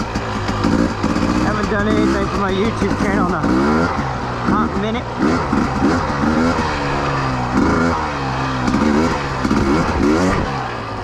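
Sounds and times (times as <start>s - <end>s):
motorcycle engine revving: 0.0s - 11.0s.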